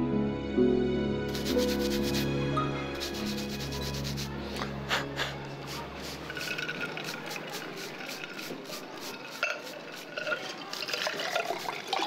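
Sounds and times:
soft background music: 0.0 - 12.0
cloth rubbing on metal: 1.3 - 2.3, 2.9 - 4.3, 5.6 - 12.0.

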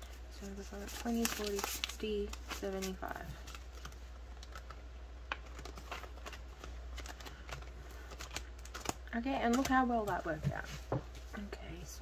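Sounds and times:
rustling of banknotes: 0.0 - 11.4.

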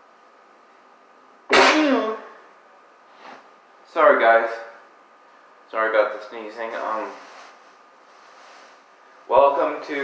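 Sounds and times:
man sneezing: 1.5 - 2.3.

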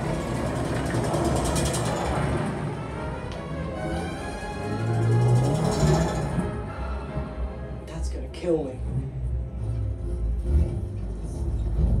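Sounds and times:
film music: 0.0 - 11.8
car engine rumble: 0.0 - 12.0.

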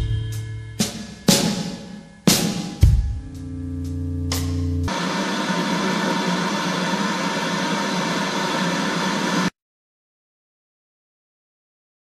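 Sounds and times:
static hiss: 4.9 - 9.5.

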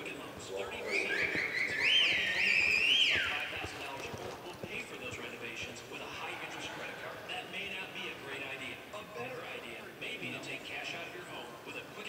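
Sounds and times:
horse hooves loping on dirt: 0.0 - 6.3.

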